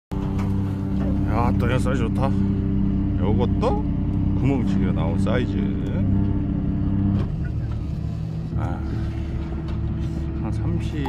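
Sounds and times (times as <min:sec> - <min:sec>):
engine droning: 0:00.1 - 0:11.0.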